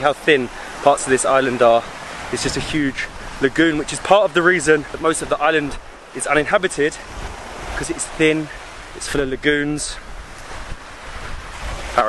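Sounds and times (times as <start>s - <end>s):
surf washing onto beach: 0.0s - 12.0s
wind buffeting microphone: 0.0s - 12.0s.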